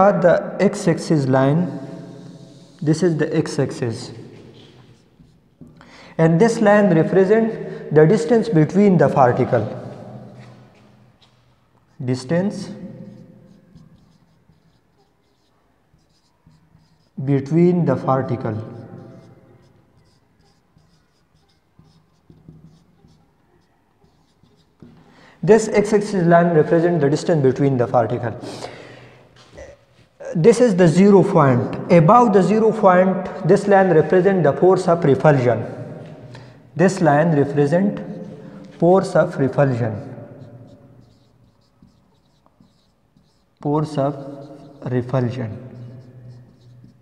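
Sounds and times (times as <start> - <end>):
marker writing on whiteboard: 0.6 - 47.0
pen ticking on board: 4.6 - 5.8, 11.2 - 17.2, 18.3 - 25.1, 38.0 - 47.0.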